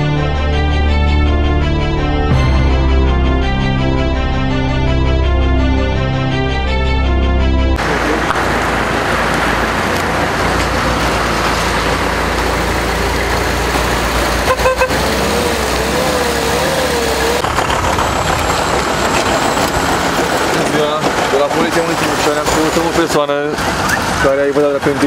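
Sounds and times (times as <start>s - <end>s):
cars driving past on wet road: 7.8s - 25.0s
car horn toot: 14.4s - 15.2s.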